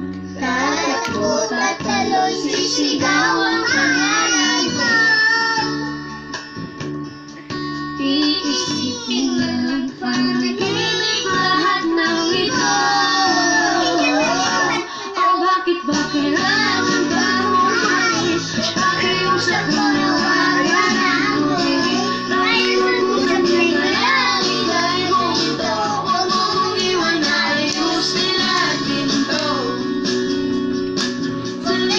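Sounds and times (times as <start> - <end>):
backing music: 0.0 - 31.9
toddler singing into a microphone: 0.4 - 6.0, 8.0 - 29.7.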